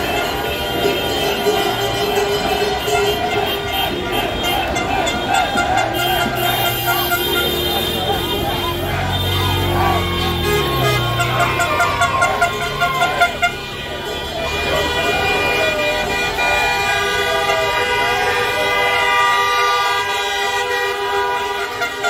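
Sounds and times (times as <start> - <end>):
car horns honking: 0.0 - 22.0
crowd voices: 0.0 - 22.0
people shouting: 0.0 - 22.0.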